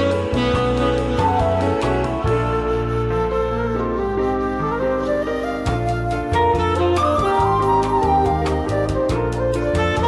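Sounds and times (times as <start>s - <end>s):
bass line: 0.0s - 10.0s
flute-like lead melody: 0.0s - 10.0s.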